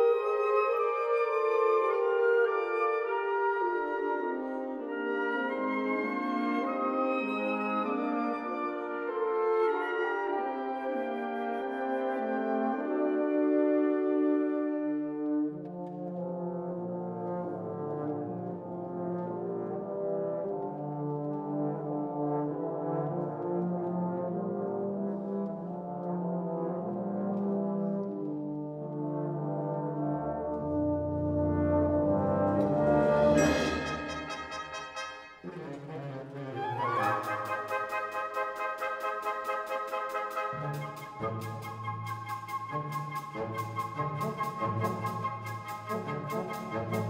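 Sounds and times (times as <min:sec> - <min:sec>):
wind band playing held chords: 0:29.2 - 0:47.0.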